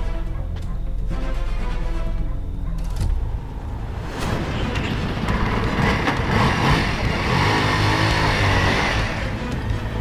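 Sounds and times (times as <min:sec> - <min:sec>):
music: 0:00.0 - 0:10.0
motorcycle engine revving: 0:05.2 - 0:10.0.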